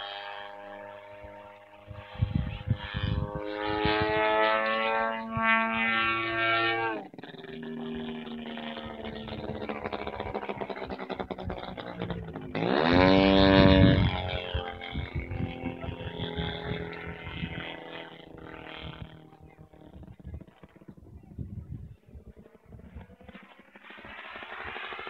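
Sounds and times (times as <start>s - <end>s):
model plane motor droning: 0.0s - 25.0s.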